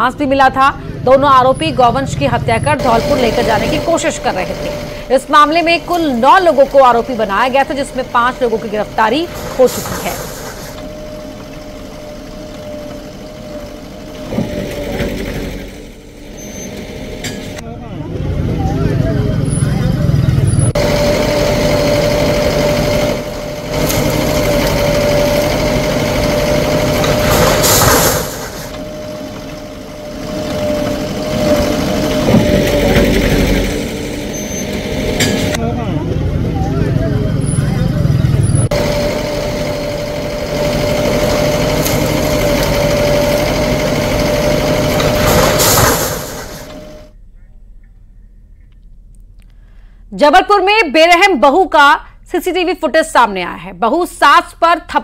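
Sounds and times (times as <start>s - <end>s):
bulldozer engine under load: 0.8s - 47.1s.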